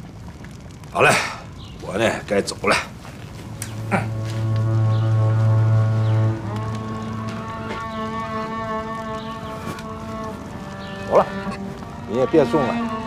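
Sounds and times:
deep low note: 0:03.6 - 0:13.0
sustained background music chords: 0:03.6 - 0:13.0.

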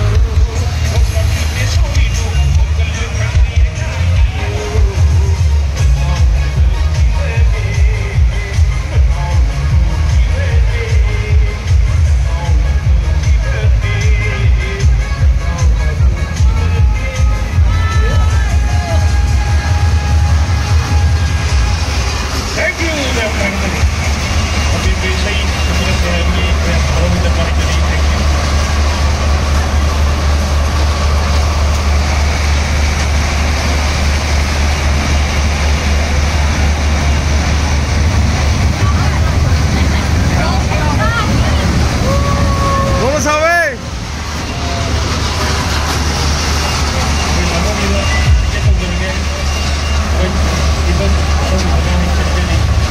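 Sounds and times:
loud music with strong bass: 0:00.0 - 0:51.5
fairground train ride rumbling: 0:00.0 - 0:52.9.

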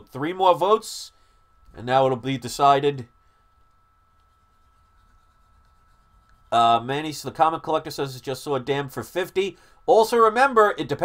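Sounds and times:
faint low hum: 0:00.0 - 0:11.0
thin steady high tone: 0:00.0 - 0:11.0.

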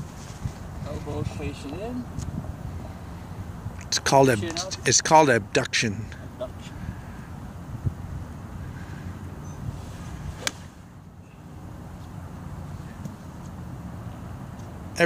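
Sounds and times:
golf club striking ball: 0:10.4 - 0:10.9.

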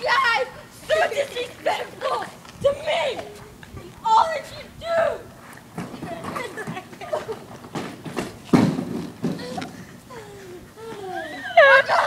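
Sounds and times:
dull thuds: 0:07.7 - 0:09.6.

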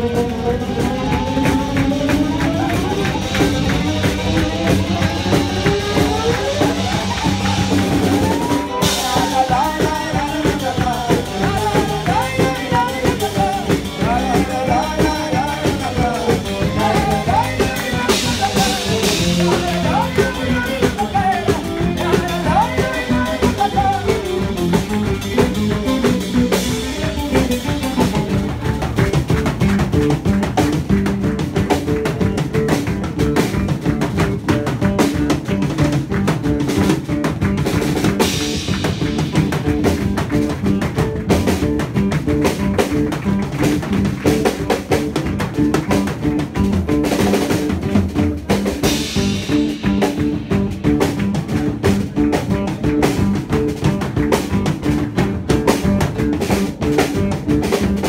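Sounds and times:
bass guitar: 0:00.0 - 0:58.0
drum kit beat: 0:00.0 - 0:58.0.

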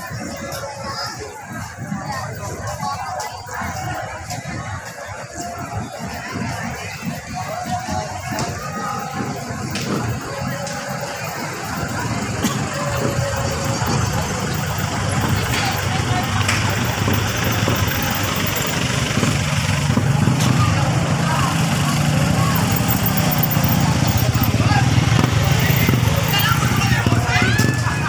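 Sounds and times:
motorcycles passing: 0:00.0 - 0:28.0
people's voices: 0:00.0 - 0:28.0
truck passing slowly: 0:00.0 - 0:28.0.

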